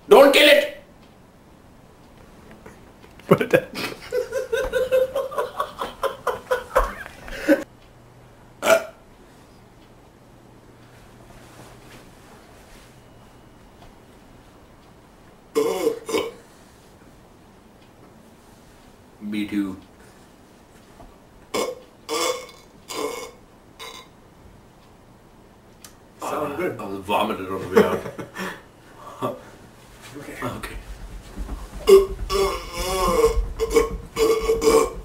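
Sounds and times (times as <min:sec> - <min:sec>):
man burping: 0:08.6 - 0:09.0, 0:15.5 - 0:16.4, 0:21.5 - 0:24.2, 0:31.9 - 0:35.0.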